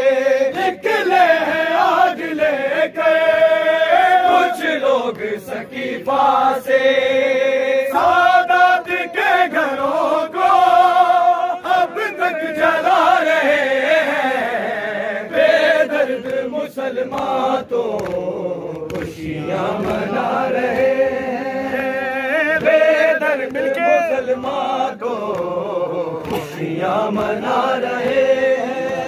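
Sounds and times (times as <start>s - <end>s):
crowd of men chanting: 0.0s - 29.0s
man singing a lament: 0.0s - 29.0s
hands slapping chests: 15.6s - 29.0s.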